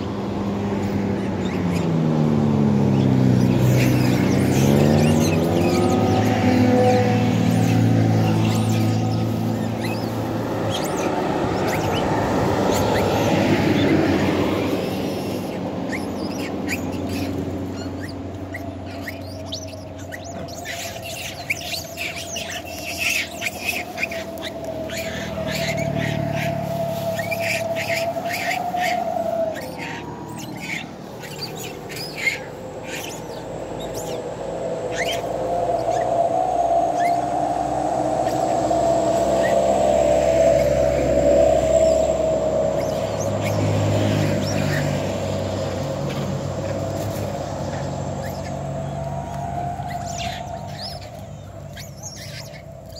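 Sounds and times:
macaques chirping: 0.0 - 52.9
road traffic rumbling: 0.0 - 52.9.

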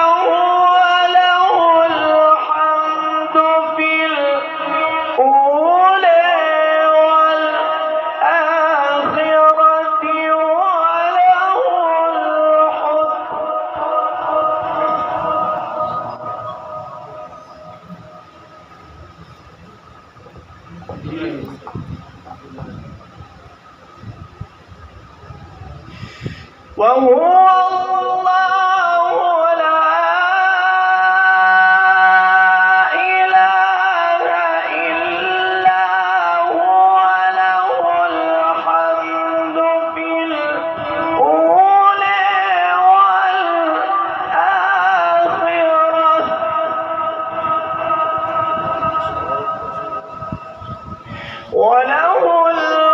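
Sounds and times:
man reciting chant: 0.0 - 18.6, 20.8 - 23.0, 26.6 - 52.9
audience calls: 13.8 - 25.9
audience murmur: 14.3 - 26.8.

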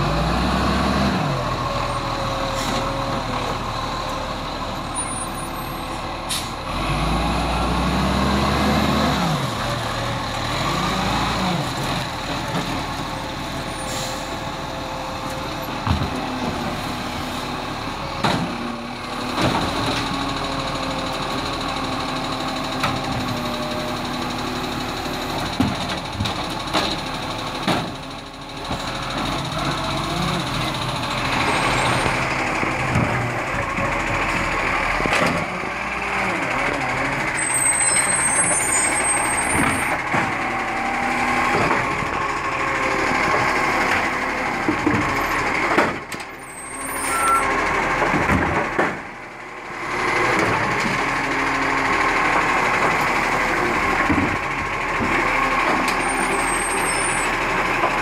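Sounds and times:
garbage truck diesel engine revving: 0.0 - 58.0
air brake hissing: 6.3 - 6.6, 13.8 - 14.4.

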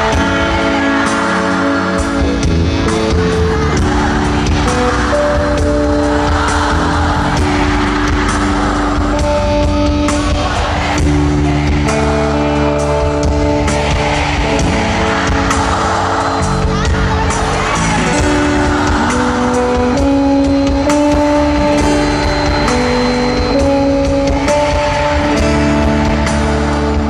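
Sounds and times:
crowd noise: 0.0 - 27.0
live pop band playing ballad: 0.0 - 27.0.

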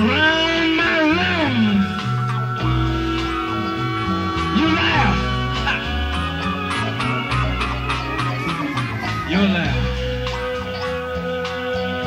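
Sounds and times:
moving bass line: 0.0 - 12.0
percussion: 0.0 - 12.0
long held high note: 2.6 - 7.2.

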